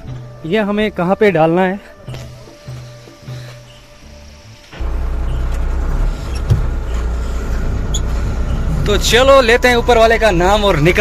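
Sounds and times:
diesel truck engine idling: 0:02.2 - 0:11.0.

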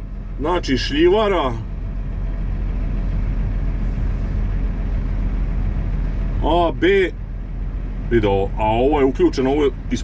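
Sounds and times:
tractor diesel engine drone: 0:00.0 - 0:10.0.

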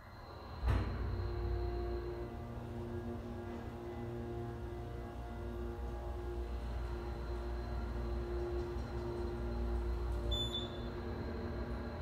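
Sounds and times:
elevator car humming: 0:00.0 - 0:12.0.

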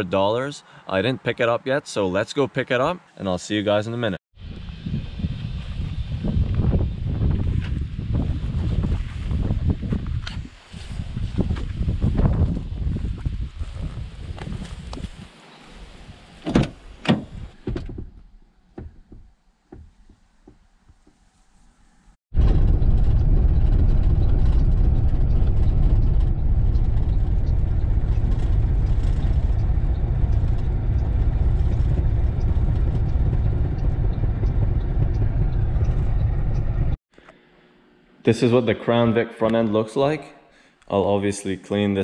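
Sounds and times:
road noise rumble inside car: 0:22.4 - 0:37.0.

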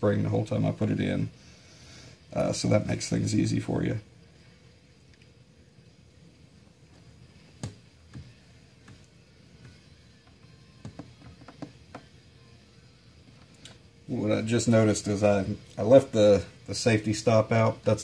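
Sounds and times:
faint clicks and taps on workbench: 0:07.6 - 0:12.1.

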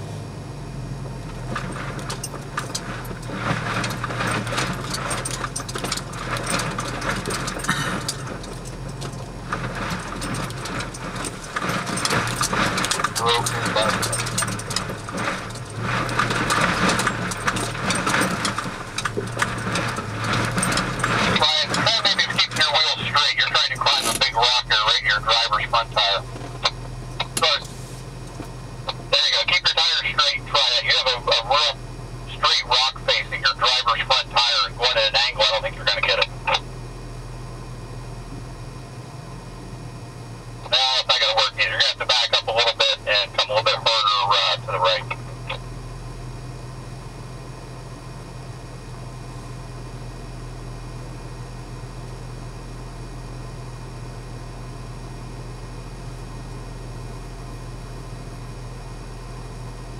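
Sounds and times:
low engine drone: 0:00.0 - 0:59.9
indistinct voices: 0:10.0 - 0:27.8, 0:28.9 - 0:36.6, 0:40.6 - 0:45.6.

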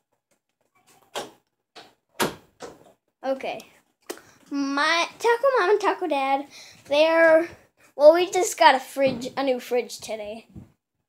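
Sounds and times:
wooden door being shut: 0:02.2 - 0:02.8.

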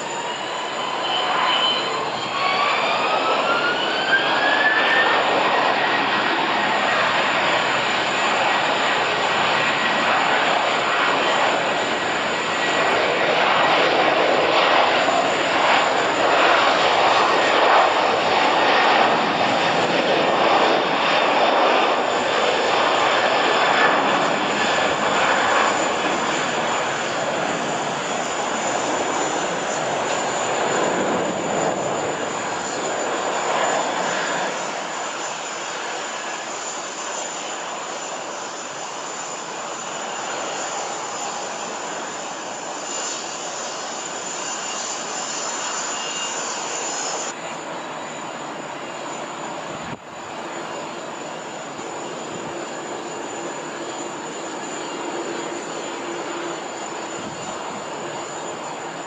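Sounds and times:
jet engines spooling up: 0:00.0 - 0:59.0.

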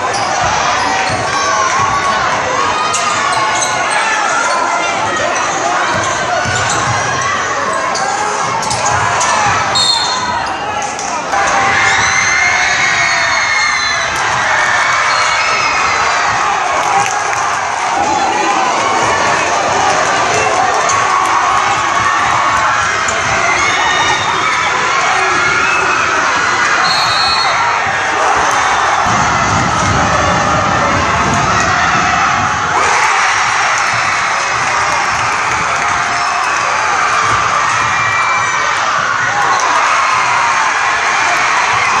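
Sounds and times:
crowd cheering and shouting: 0:00.0 - 0:42.0.

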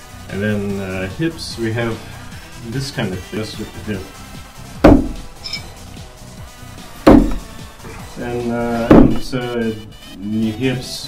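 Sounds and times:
knives hitting wooden target: 0:04.9 - 0:05.7.

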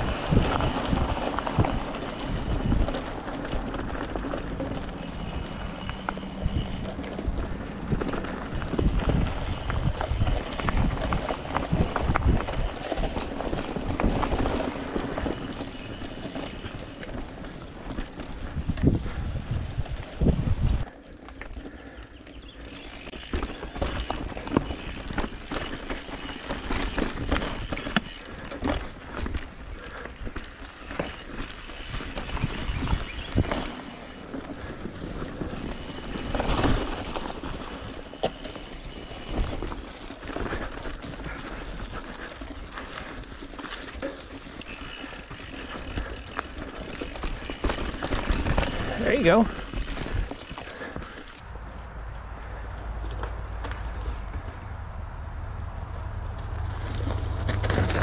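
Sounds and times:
tyres crunching over stones: 0:00.0 - 0:19.2, 0:19.9 - 0:51.6
wind rumble on microphone: 0:00.0 - 0:20.9, 0:31.9 - 0:38.1
bike rattling and knocking: 0:00.0 - 0:51.5, 0:56.8 - 0:58.0.

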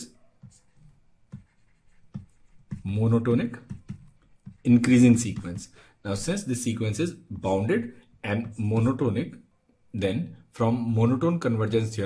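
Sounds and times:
stylus tapping and scratching on tablet: 0:00.0 - 0:06.3, 0:07.4 - 0:09.2.

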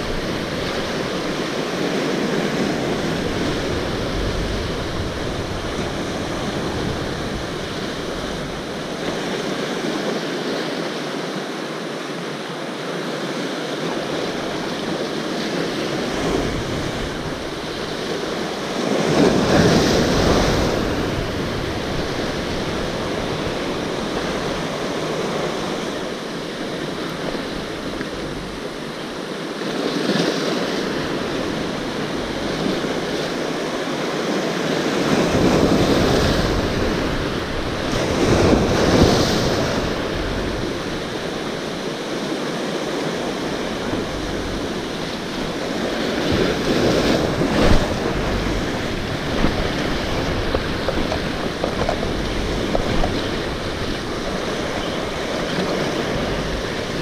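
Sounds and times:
wind buffeting microphone: 0:00.0 - 0:09.9, 0:14.0 - 0:57.0
sea waves on rocky shore: 0:00.0 - 0:57.0.

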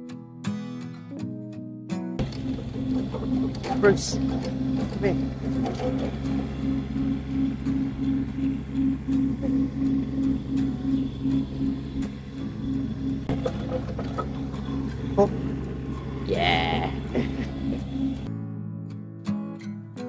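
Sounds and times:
diesel engine running: 0:02.2 - 0:18.3.

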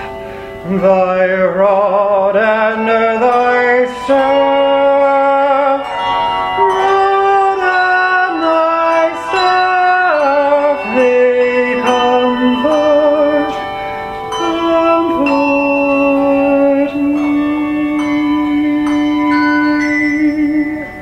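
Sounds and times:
handbell choir: 0:00.0 - 0:21.0
person singing slow notes: 0:00.0 - 0:21.0.

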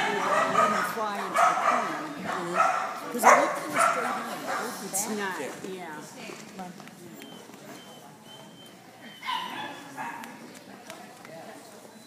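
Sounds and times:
dog barking: 0:00.0 - 0:04.8, 0:09.2 - 0:10.4.

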